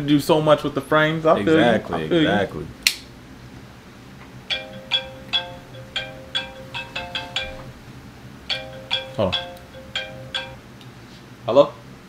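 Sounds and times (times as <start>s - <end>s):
mobile phone ringtone: 4.5s - 7.8s, 8.5s - 10.6s.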